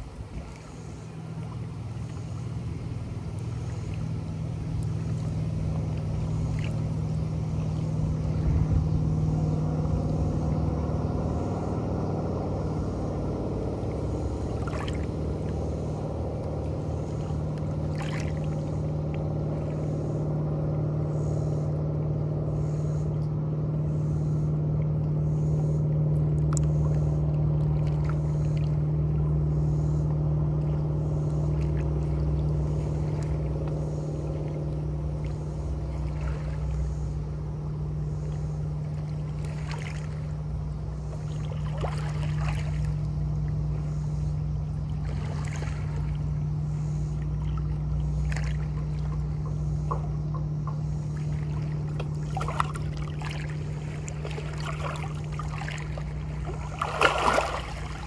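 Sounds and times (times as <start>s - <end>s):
motorboat engine hum: 0.0s - 58.0s
small waves lapping on boulders: 13.2s - 20.1s, 25.9s - 58.0s
sharp water splashes: 13.8s - 19.9s, 30.6s - 37.3s, 38.2s - 43.8s, 44.6s - 58.0s.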